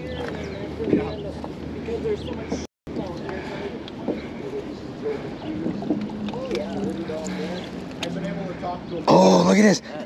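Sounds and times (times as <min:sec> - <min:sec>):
distant voice: 0:00.0 - 0:10.0.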